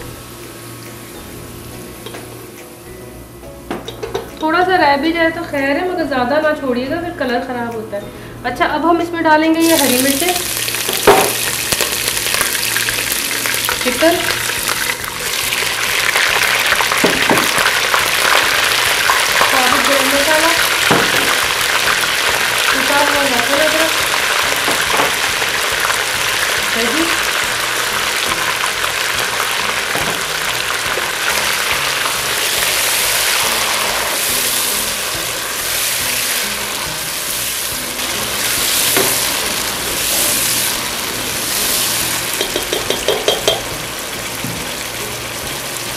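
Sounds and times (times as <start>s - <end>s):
food sizzling in hot oil: 9.6s - 45.9s.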